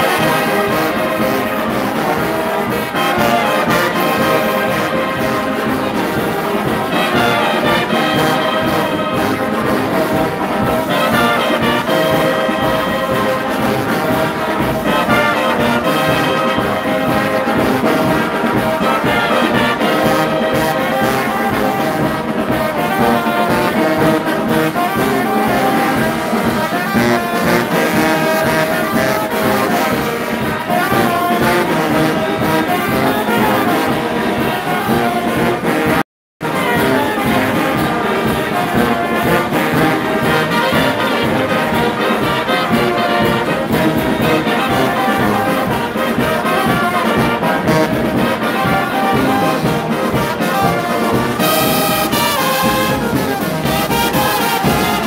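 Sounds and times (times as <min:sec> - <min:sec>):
brass music: 0:00.0 - 0:55.0.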